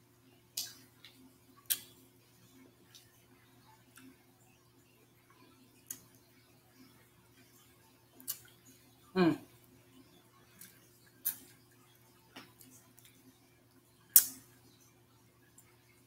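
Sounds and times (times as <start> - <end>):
wet mouth smacks while eating: 8.2 - 8.5, 10.6 - 11.5, 14.2 - 14.4
person humming: 9.2 - 9.4.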